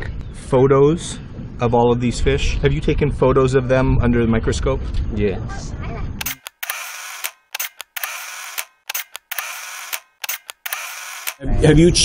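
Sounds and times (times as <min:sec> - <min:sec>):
camera shutter clicks: 0:06.2 - 0:11.4.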